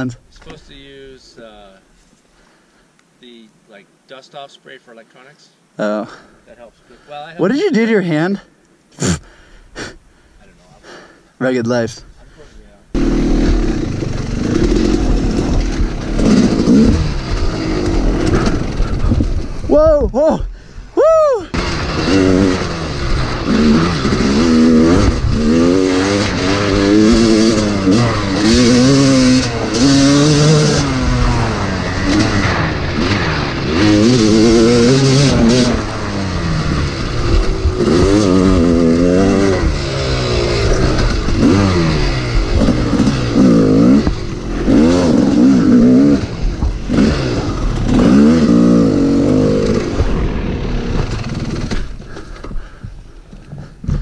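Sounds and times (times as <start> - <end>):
dirt bike engine revving: 12.9 - 19.7, 21.5 - 52.8.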